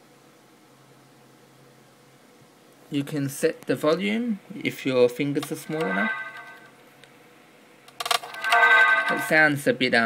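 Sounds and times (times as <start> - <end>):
phone volume chime: 5.6 - 6.7, 8.4 - 9.6.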